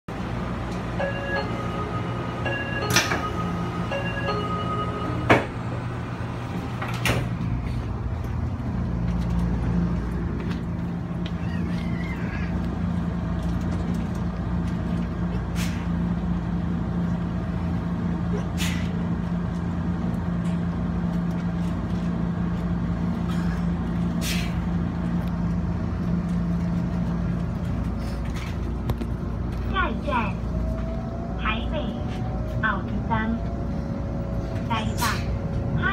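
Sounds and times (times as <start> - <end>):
train doors shutting with clunks: 0.1 - 35.9
train drive hum: 0.1 - 35.9
door warning chime: 1.0 - 5.7.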